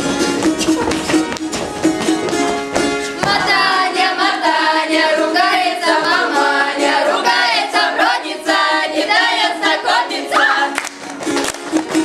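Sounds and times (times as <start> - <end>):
rapid percussive beats: 0.0 - 4.1
children singing: 3.2 - 10.8.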